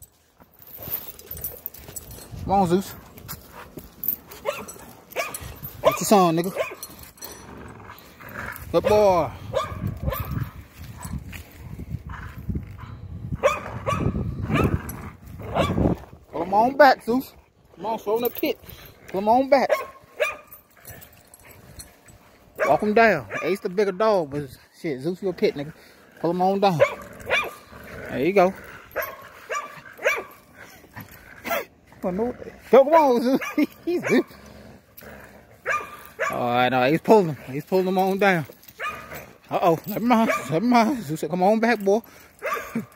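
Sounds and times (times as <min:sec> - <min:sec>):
dogs growling: 0:00.7 - 0:11.3, 0:12.0 - 0:23.6, 0:25.0 - 0:42.9
dog barking: 0:04.4 - 0:06.8, 0:09.5 - 0:10.4, 0:13.4 - 0:14.8, 0:15.5 - 0:15.8, 0:19.7 - 0:20.5, 0:22.6 - 0:23.6, 0:26.8 - 0:27.6, 0:29.0 - 0:30.4, 0:33.4 - 0:34.3, 0:35.6 - 0:36.4, 0:38.8 - 0:39.1, 0:40.2 - 0:40.6, 0:42.4 - 0:42.9.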